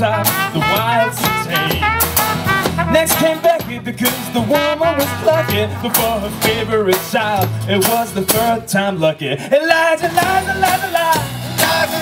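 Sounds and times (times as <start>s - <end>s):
trumpet: 0.0s - 6.7s
man singing: 0.0s - 12.0s
strummed acoustic guitars: 0.0s - 12.0s.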